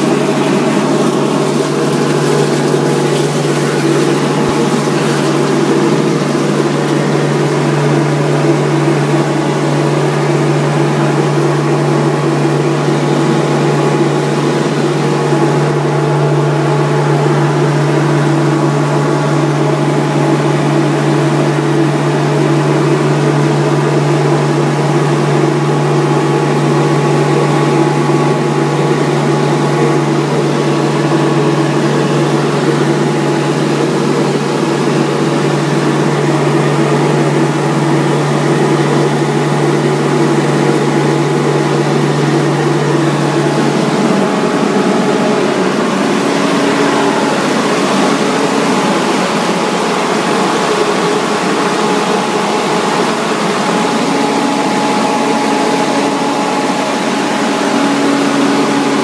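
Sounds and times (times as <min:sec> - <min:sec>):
centrifugal concentrator humming: 0:00.0 - 0:59.0.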